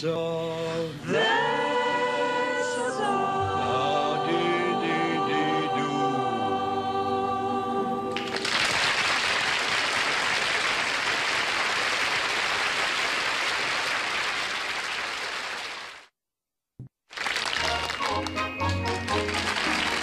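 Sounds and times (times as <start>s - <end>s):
voices singing a chord: 0.0s - 8.2s
audience applauding: 8.2s - 16.1s, 17.1s - 20.0s.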